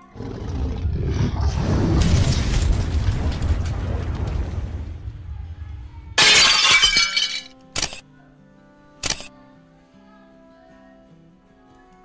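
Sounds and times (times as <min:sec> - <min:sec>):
loud shattering crash: 0:01.4 - 0:07.5.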